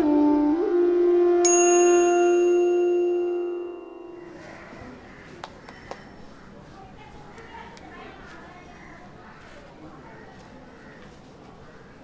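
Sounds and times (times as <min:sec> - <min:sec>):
flute long note: 0:00.0 - 0:04.5
bell-like chime: 0:01.5 - 0:04.4.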